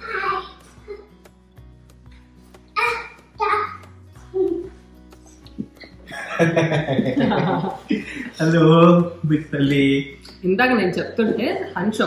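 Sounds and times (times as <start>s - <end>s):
person chuckling: 5.6s - 8.3s.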